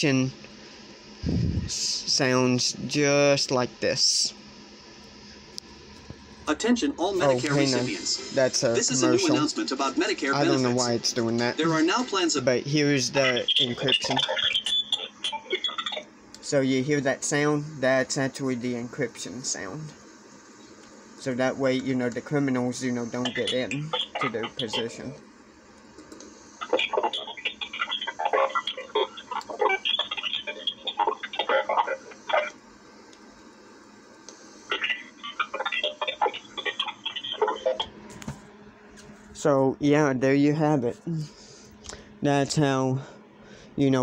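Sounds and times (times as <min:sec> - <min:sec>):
digital radio clicking and warbling: 0:13.0 - 0:16.1, 0:21.8 - 0:25.2, 0:26.6 - 0:32.6, 0:34.7 - 0:37.9.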